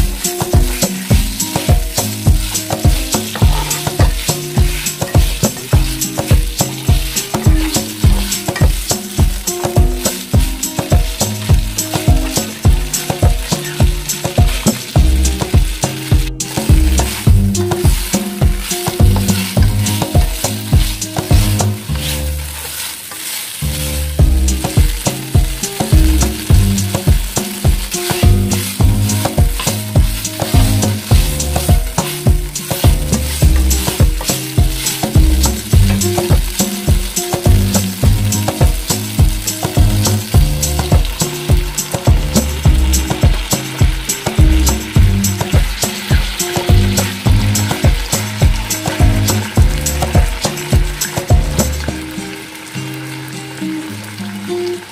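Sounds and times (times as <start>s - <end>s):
background music with steady beat: 0.0s - 22.8s, 23.6s - 52.7s
spatula turning food in wok: 0.0s - 52.0s
ribs sizzling in oil: 0.0s - 54.9s.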